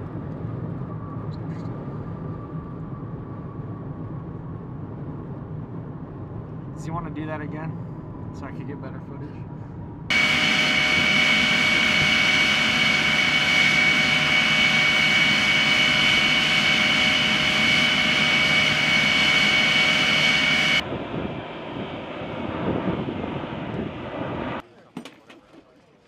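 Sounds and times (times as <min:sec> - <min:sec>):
dull engine rumble: 0:00.0 - 0:24.9
jet engine rushing with whine: 0:10.0 - 0:24.6.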